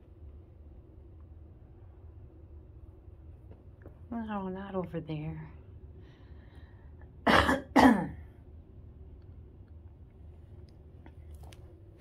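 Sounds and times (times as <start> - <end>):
person coughing: 7.2 - 8.3.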